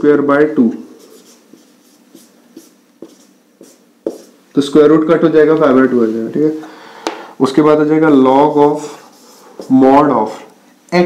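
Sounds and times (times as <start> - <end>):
marker scratching on whiteboard: 0.8 - 4.4, 8.0 - 10.4
man talking: 4.5 - 6.7, 7.4 - 11.0.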